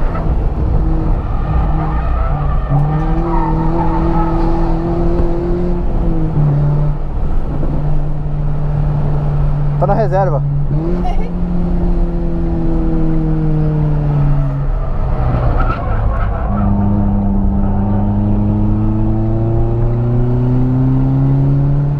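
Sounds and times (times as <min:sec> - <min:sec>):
car engine revving: 0:00.0 - 0:21.9.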